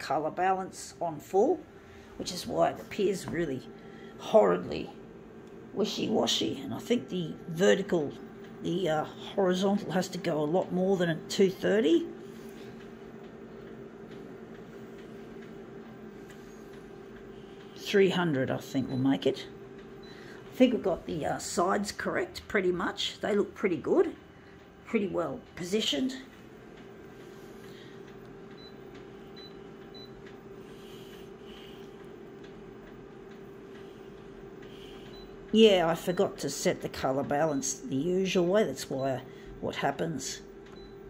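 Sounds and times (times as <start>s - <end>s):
photocopier humming: 0.0s - 41.0s.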